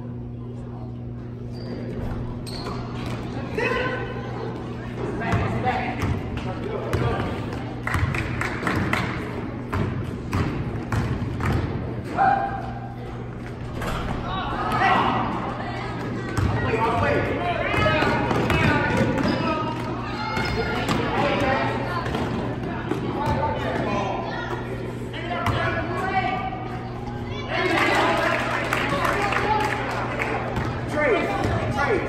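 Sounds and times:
steady low hum: 0:00.0 - 0:27.6
voices and shouts echoing: 0:02.9 - 0:09.6, 0:11.7 - 0:32.0
basketball bouncing on floor: 0:09.7 - 0:11.8.

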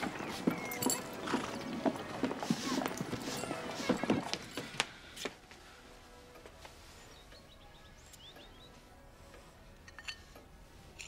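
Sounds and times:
horse hooves clip-clopping: 0:00.0 - 0:05.6.

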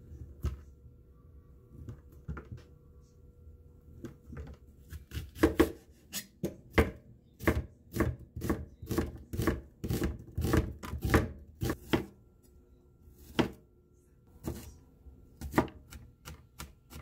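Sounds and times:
knife slicing onion on board: 0:04.9 - 0:12.1, 0:13.2 - 0:13.6, 0:14.4 - 0:14.7, 0:15.4 - 0:17.0.

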